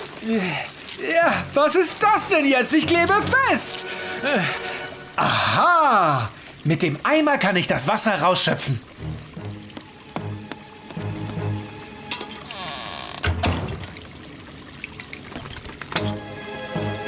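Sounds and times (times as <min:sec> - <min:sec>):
water pouring: 0:00.0 - 0:17.0
cartoon background music: 0:02.6 - 0:05.2, 0:16.0 - 0:17.0.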